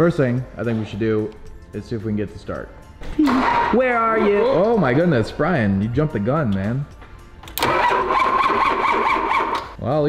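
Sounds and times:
starter motor cranking engine: 0:07.5 - 0:09.8.

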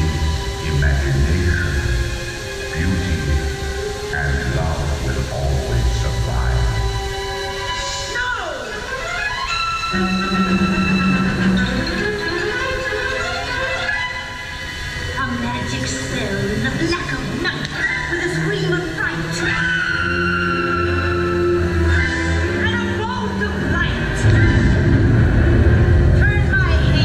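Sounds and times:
voice over loudspeakers: 0:04.2 - 0:06.8
loud deep rumble: 0:23.5 - 0:27.0.

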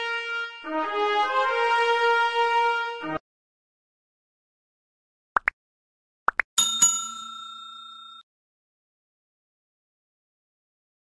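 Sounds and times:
bright bell chime: 0:06.6 - 0:08.2.

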